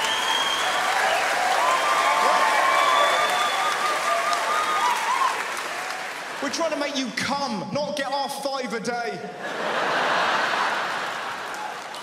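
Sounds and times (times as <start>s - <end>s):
audience applauding: 0.0s - 7.0s, 10.0s - 12.0s
audience laughing: 9.4s - 11.6s.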